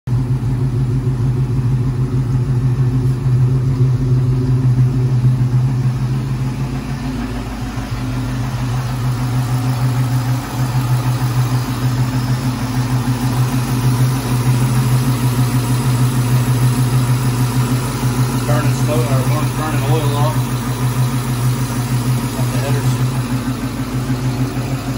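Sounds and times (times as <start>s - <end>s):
car engine idling: 0.1s - 24.9s.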